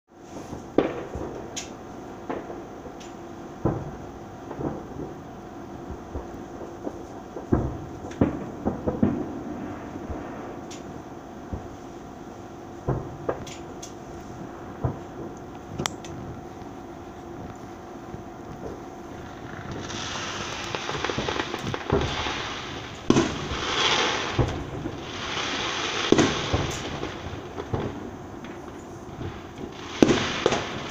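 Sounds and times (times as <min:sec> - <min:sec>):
distant fireworks bangs: 0:00.2 - 0:30.9.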